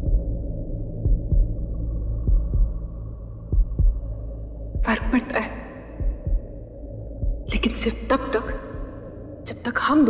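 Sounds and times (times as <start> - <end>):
heartbeat double thumps: 0.0 - 9.2
steady low drone: 0.0 - 10.0.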